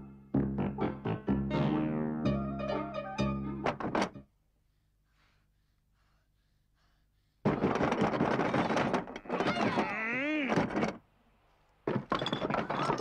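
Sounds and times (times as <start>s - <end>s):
loud noisy clatter: 7.5s - 9.9s.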